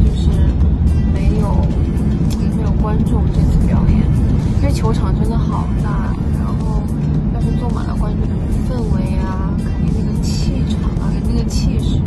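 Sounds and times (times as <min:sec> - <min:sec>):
road and engine rumble: 0:00.0 - 0:12.0
woman talking: 0:00.0 - 0:12.0.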